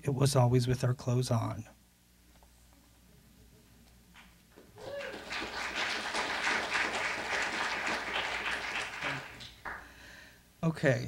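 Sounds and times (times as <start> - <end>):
audience applauding: 4.7 - 9.9.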